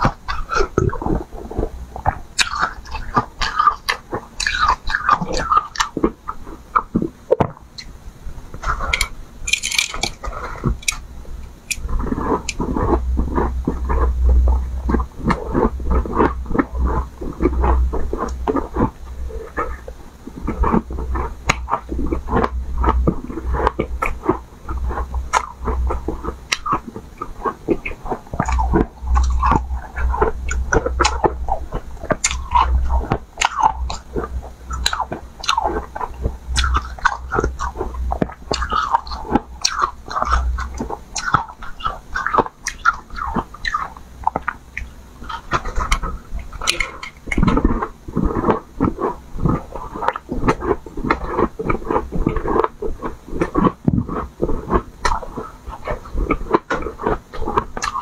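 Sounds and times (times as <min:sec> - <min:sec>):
low rumble: 0:08.0 - 0:41.0
person crunching ice: 0:08.9 - 0:11.0.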